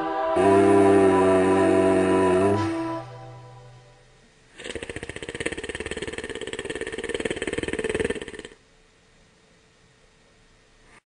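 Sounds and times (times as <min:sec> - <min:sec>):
cartoon snoring: 0:00.4 - 0:03.1, 0:04.6 - 0:08.6.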